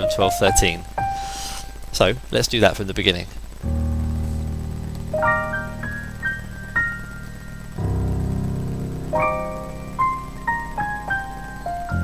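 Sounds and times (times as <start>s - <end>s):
slow jazz piano: 0.0s - 2.0s, 3.6s - 12.0s.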